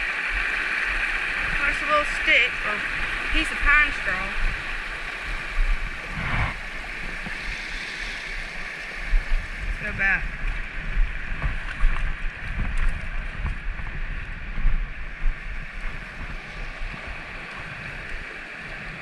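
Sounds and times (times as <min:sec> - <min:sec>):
creek water rushing over rocks: 0:00.0 - 0:19.0.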